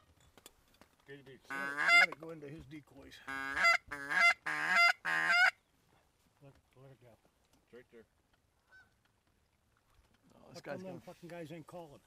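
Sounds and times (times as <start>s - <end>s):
goose honking: 1.5s - 2.2s, 3.3s - 5.6s.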